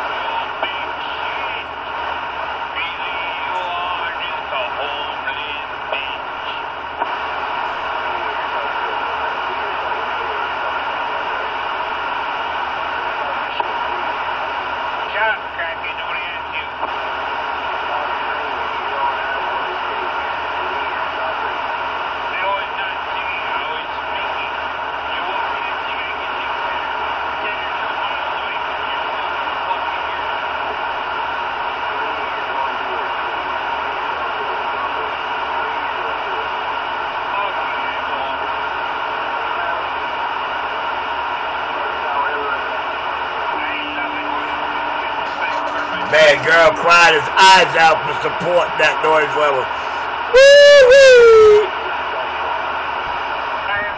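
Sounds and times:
faint garbled radio voices: 0.0s - 53.9s
radio static hiss: 0.0s - 53.9s.

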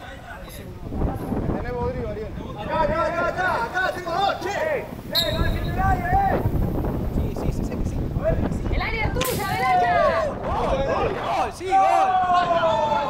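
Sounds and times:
wind rumble on microphone: 0.0s - 13.0s
players calling and shouting: 2.0s - 6.7s, 8.0s - 13.0s.

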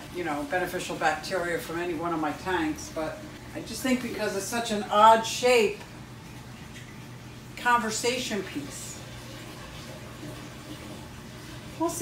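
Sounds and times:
low steady hum: 0.0s - 12.0s
running water: 0.0s - 12.0s.

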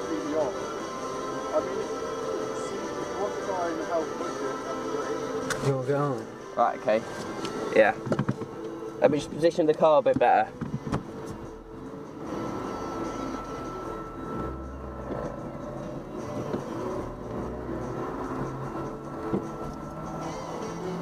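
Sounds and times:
background music: 0.0s - 21.0s
car engine running: 0.0s - 21.0s.

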